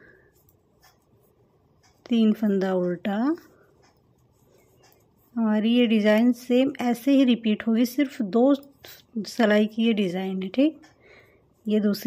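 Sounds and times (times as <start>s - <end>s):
knitting needles scratching: 0.0s - 12.0s
woman speaking: 2.0s - 3.6s, 5.3s - 10.8s, 11.6s - 12.0s.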